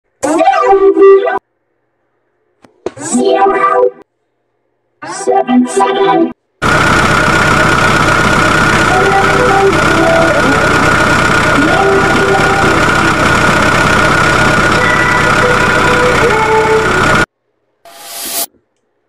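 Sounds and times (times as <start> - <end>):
high whine: 6.6 - 17.3, 17.9 - 18.6
loud engine running: 6.6 - 17.3.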